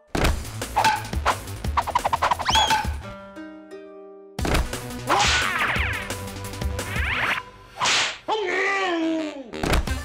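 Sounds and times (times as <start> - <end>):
staffs whooshing through air: 0.7 - 3.0, 5.1 - 6.0, 7.0 - 8.2.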